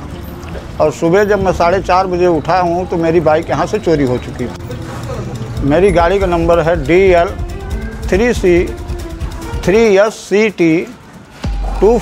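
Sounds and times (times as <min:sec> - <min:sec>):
man speaking: 0:05.6 - 0:08.8, 0:09.5 - 0:12.0.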